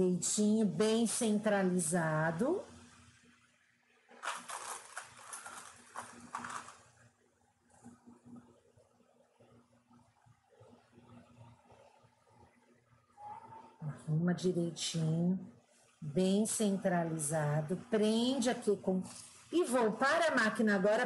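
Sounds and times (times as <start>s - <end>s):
fabric rustling: 4.1s - 7.0s.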